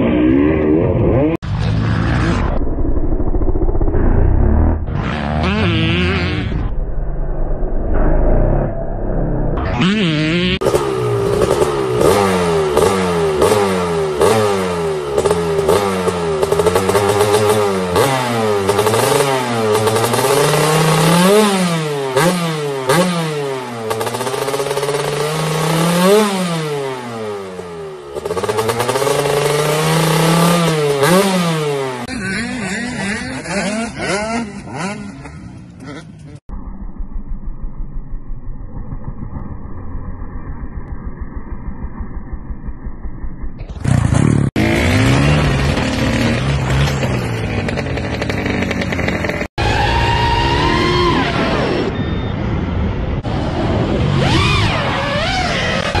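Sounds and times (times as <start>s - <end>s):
engine running with even pulsing: 0.0s - 17.6s, 36.2s - 49.4s
dirt bike engines revving: 4.7s - 6.7s, 9.7s - 36.4s, 43.6s - 52.0s.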